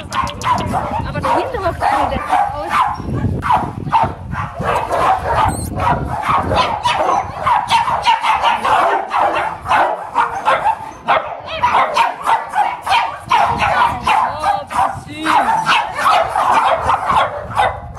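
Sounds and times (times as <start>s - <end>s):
dogs barking: 0.0s - 17.9s
high wavering dog whine: 4.7s - 5.9s.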